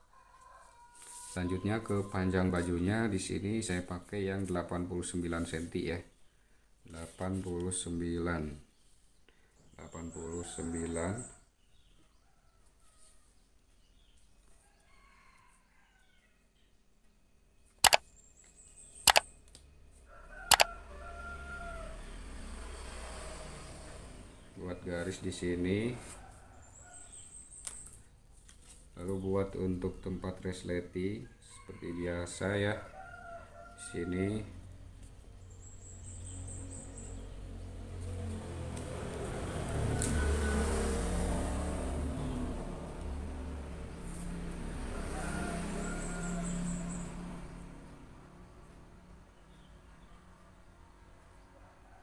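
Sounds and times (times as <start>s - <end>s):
rooster crowing: 0.0s - 3.1s, 20.1s - 22.3s, 31.5s - 34.7s, 39.2s - 42.4s, 43.1s - 47.4s
vehicle engine rumble: 34.6s - 48.9s.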